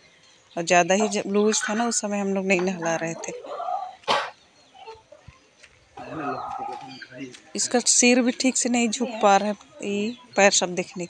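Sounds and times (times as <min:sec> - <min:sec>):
chicken calling: 0:00.6 - 0:07.4.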